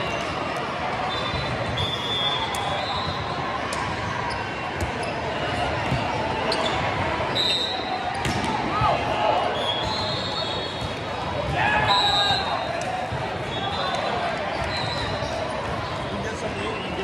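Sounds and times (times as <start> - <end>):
sneakers squeaking on court floor: 4.2 - 8.4, 9.5 - 17.0
volleyballs being hit: 8.2 - 9.0.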